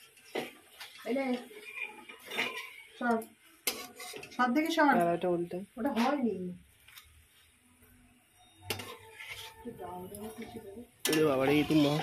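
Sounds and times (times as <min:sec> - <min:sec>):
oil frying: 0:00.0 - 0:12.0
spatula scraping a steel pan: 0:01.3 - 0:02.9, 0:03.6 - 0:04.7, 0:08.6 - 0:12.0.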